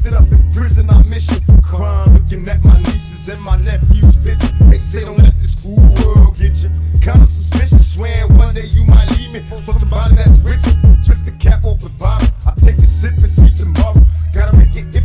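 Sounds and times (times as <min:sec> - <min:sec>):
steady drum beat: 0:00.0 - 0:03.0, 0:03.6 - 0:09.3, 0:10.0 - 0:15.0
boosted bass line: 0:00.0 - 0:15.0
man rapping: 0:00.0 - 0:15.0.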